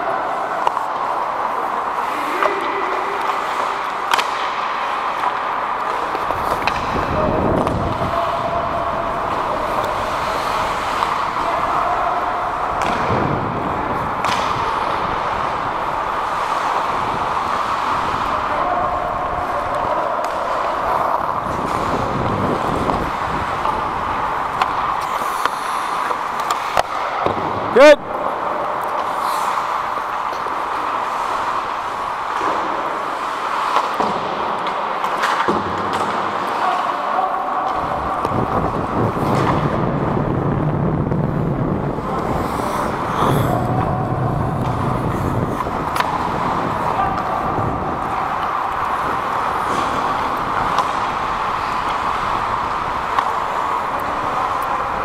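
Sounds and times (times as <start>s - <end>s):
hockey sticks and puck clicking: 0.0s - 36.8s, 37.6s - 39.9s, 41.9s - 55.0s
players shouting: 6.0s - 25.0s, 42.9s - 55.0s
skates hissing on ice: 24.9s - 26.8s, 29.0s - 32.0s, 42.0s - 43.7s.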